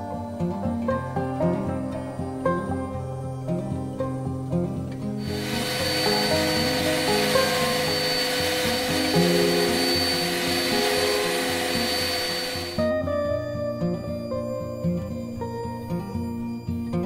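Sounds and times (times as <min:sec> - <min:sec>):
background music: 0:00.0 - 0:17.0
router spindle milling wood: 0:05.2 - 0:12.8
shop vacuum sucking: 0:05.2 - 0:13.0.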